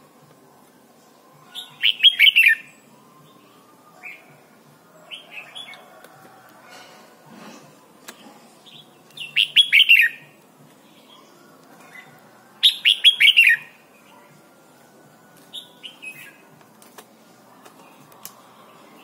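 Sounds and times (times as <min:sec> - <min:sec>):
bird whistling song: 0:01.5 - 0:04.3, 0:08.7 - 0:10.4, 0:12.6 - 0:13.8, 0:15.5 - 0:16.4.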